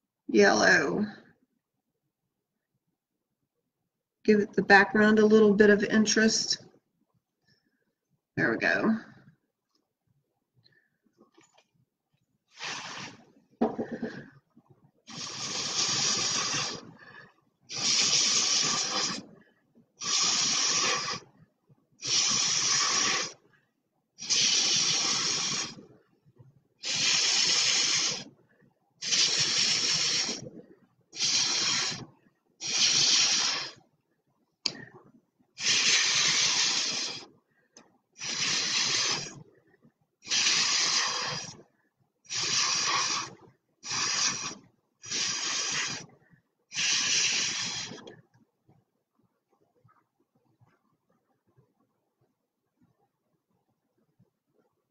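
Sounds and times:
air blown through a straw: 12.5 - 14.5, 15.1 - 21.4, 22.0 - 23.5, 24.2 - 26.1, 26.8 - 28.4, 29.0 - 33.8, 34.7 - 37.3, 38.2 - 39.5, 40.2 - 41.6, 42.3 - 46.1, 46.7 - 48.2.

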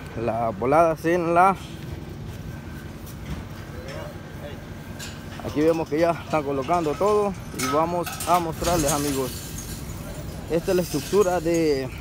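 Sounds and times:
distant voices: 0.0 - 12.0
low steady rumble: 0.0 - 12.0.

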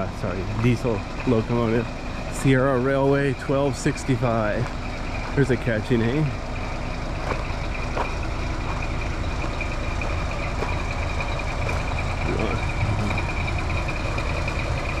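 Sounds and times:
diesel locomotive engine idling: 0.0 - 15.0
steady high-pitched tone: 12.2 - 13.6.

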